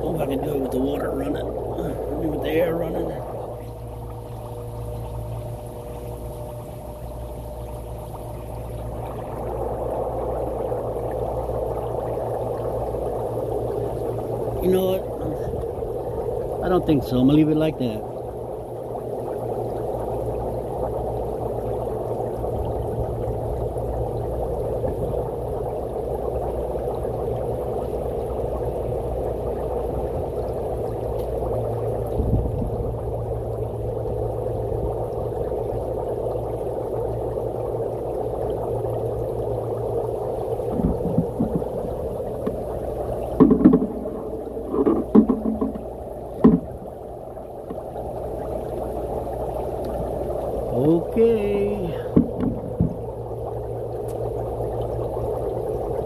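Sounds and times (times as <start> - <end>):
air bubbling through water: 0.0 - 56.0
low pump hum: 0.0 - 56.0
sharp knocks: 40.8 - 41.7, 43.4 - 45.8, 46.4 - 46.8, 52.1 - 53.0.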